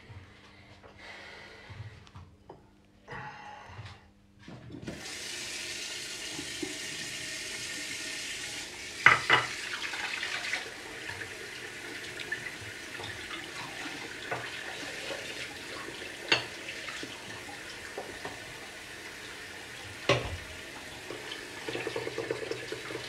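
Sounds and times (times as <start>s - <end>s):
tap running into a sink: 4.8s - 23.0s.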